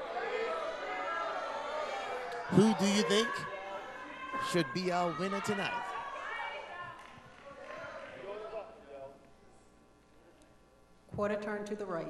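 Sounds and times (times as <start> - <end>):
voices calling out in a hall: 0.0 - 9.3.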